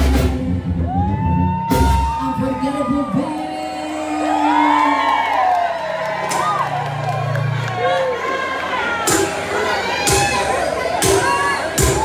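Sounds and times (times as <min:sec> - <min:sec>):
brass band playing: 0:00.0 - 0:02.1
crowd whooping and cheering: 0:00.6 - 0:12.0.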